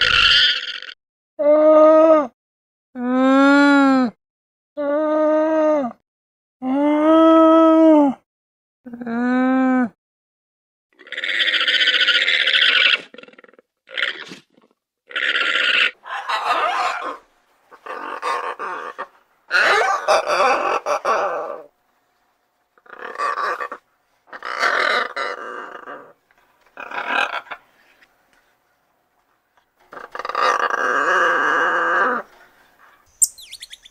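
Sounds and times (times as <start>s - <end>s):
macaws squawking: 15.4s - 21.6s, 22.8s - 25.4s, 26.8s - 27.6s, 33.2s - 33.9s.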